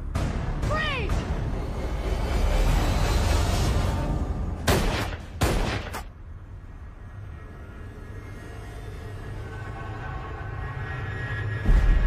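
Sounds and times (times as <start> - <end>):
gunshots: 4.6 - 6.1.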